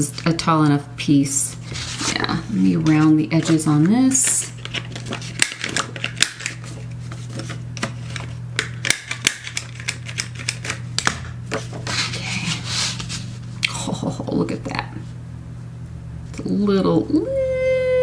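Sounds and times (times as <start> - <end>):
paper handling: 1.5 - 10.8, 11.5 - 13.4.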